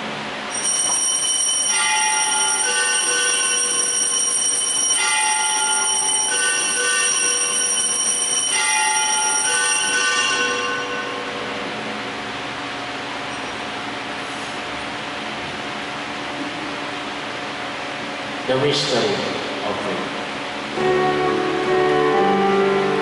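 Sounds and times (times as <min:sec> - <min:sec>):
altar bells ringing: 0:00.5 - 0:11.7.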